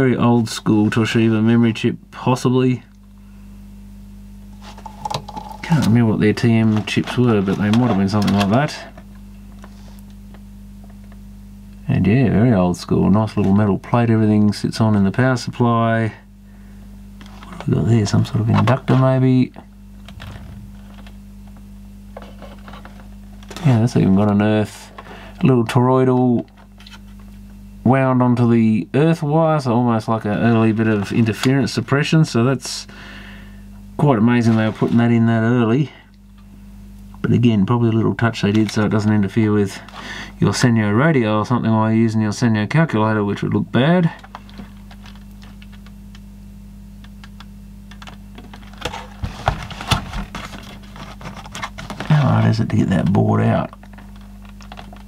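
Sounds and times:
low mains hum: 0:00.0 - 0:55.0
plastic case clattering: 0:04.6 - 0:08.6, 0:47.9 - 0:52.3, 0:53.6 - 0:55.0.

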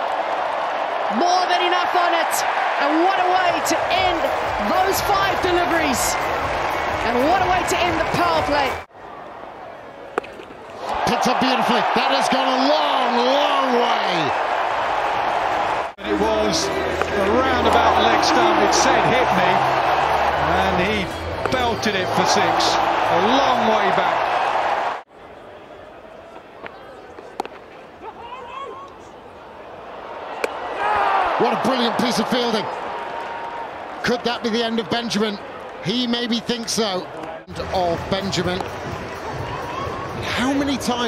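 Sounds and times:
stadium crowd murmur: 0:15.5 - 0:24.2, 0:25.1 - 0:32.8
cricket bat striking ball: 0:30.4 - 0:30.6.

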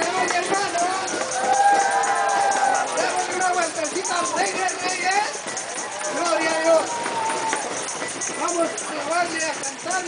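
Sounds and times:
tambourines jingling: 0:00.0 - 0:10.0.

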